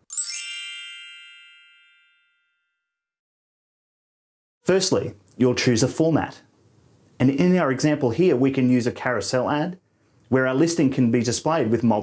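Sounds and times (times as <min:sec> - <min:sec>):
bell-like chime ringing: 0:00.0 - 0:02.9.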